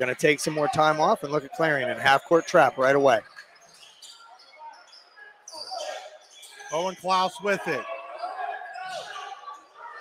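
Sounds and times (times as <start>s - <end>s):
sneaker squeaks: 1.8s - 7.4s, 8.1s - 9.6s.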